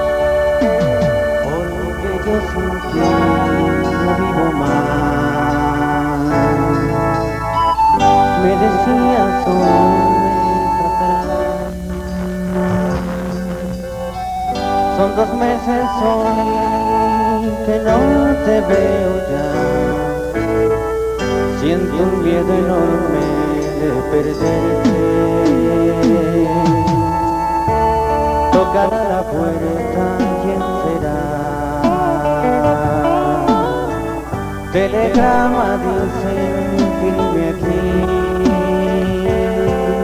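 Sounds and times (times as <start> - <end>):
band playing slow ballad: 0.0 - 40.0
keyboard organ chords: 0.0 - 40.0
steady bass line: 0.0 - 40.0.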